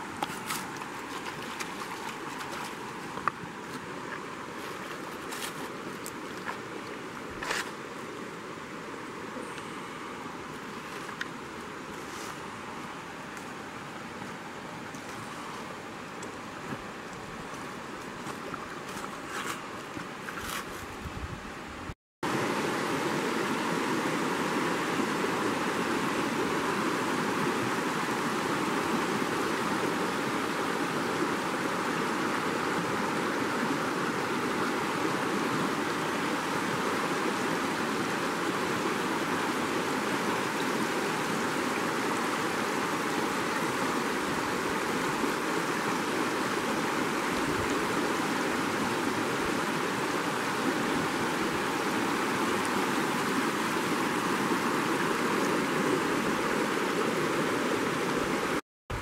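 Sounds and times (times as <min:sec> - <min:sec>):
river rushing over rocks: 0:00.0 - 0:20.2, 0:22.2 - 0:59.0.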